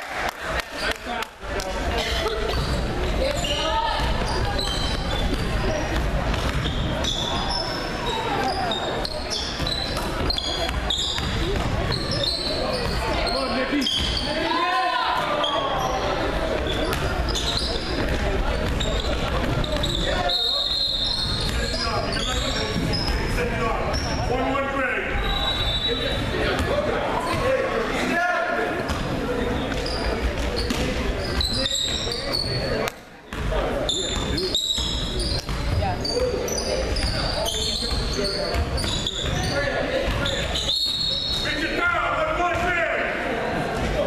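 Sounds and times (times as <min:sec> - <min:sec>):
people shouting in echoing hall: 0:13.2 - 0:16.2.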